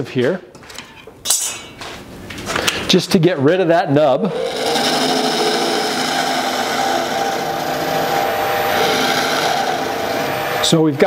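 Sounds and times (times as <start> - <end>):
lathe gouge cutting wood: 4.3 - 11.0
lathe motor hum: 4.3 - 11.0.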